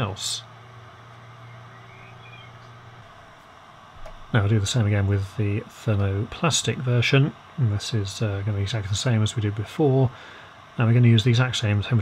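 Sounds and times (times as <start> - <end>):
faint hiss: 0.0 - 12.0
fan humming: 0.0 - 12.0
faint high chirps: 1.4 - 2.8.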